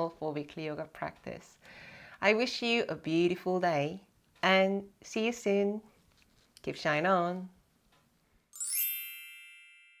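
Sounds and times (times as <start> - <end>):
bell-like chime ringing: 8.6 - 10.0.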